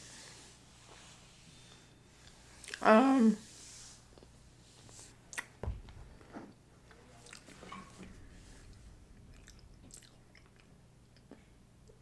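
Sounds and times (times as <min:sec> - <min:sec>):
low steady hum: 0:00.0 - 0:12.0
soft mouth clicks: 0:05.3 - 0:05.5
chewing food: 0:07.2 - 0:07.5, 0:09.3 - 0:11.5.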